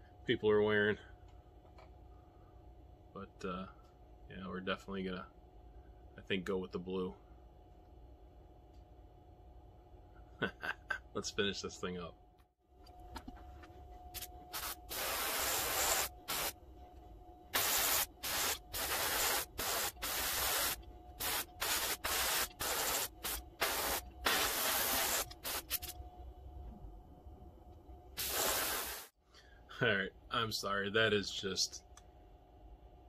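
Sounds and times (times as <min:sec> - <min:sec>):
faint steady hum: 0:00.0 - 0:33.0
airbrush spraying hiss: 0:14.1 - 0:16.6, 0:17.5 - 0:26.0, 0:28.2 - 0:29.2.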